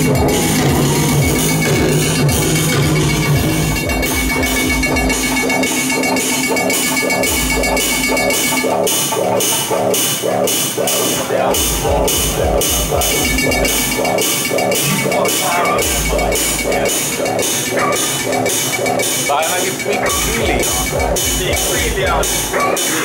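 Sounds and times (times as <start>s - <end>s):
electronic music synth pulse: 0.0s - 23.0s.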